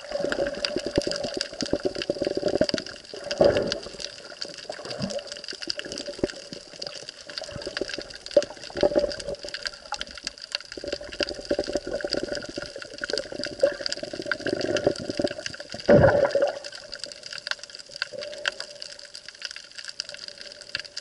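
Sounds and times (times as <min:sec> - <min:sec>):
crackle of small clicks: 0:00.0 - 0:21.0
water rushing and sloshing underwater: 0:00.0 - 0:21.0.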